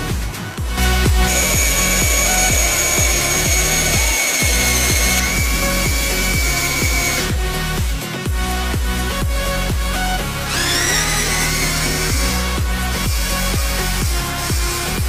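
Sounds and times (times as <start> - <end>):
music with steady beat: 0.0 - 15.0
cordless drill whining: 1.2 - 7.8, 10.4 - 15.0.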